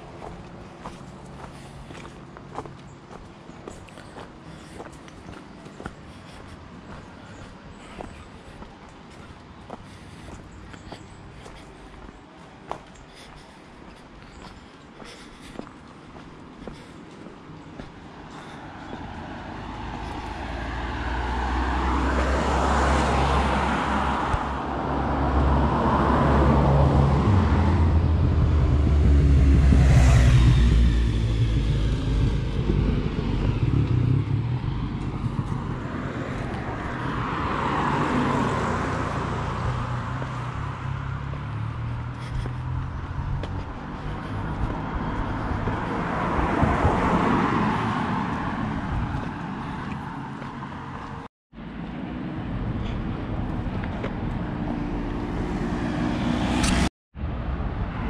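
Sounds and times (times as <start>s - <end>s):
cars passing on a road: 0.0s - 58.0s.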